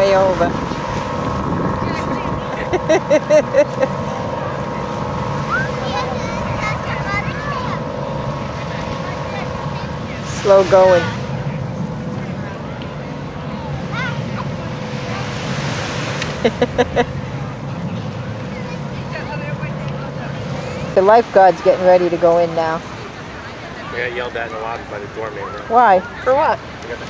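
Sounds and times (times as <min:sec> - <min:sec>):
background rumble: 0:00.0 - 0:24.2
constant hum: 0:00.0 - 0:27.0
people's voices and calls: 0:00.0 - 0:27.0.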